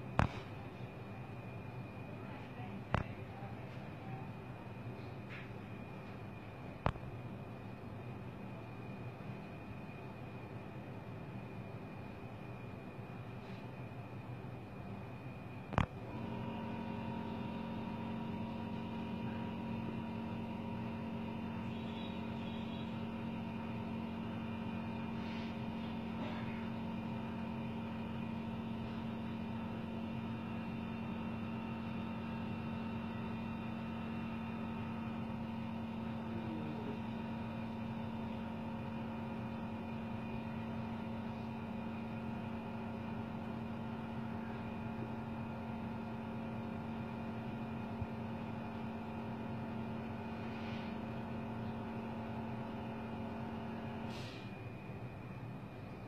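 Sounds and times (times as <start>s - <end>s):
steady machine hum: 0.0s - 56.0s.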